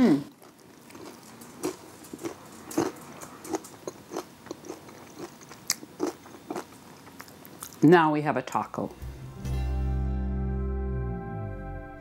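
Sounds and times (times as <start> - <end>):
crunchy chewing: 0.3 - 7.8.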